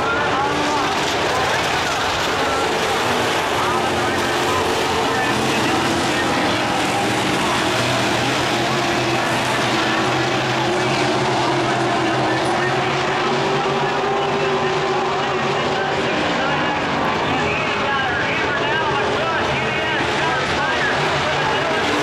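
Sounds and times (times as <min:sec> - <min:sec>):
race car engines droning: 0:00.0 - 0:22.0.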